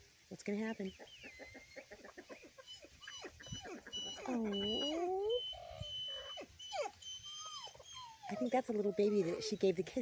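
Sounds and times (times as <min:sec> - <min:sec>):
chicken clucking: 0:01.0 - 0:05.0.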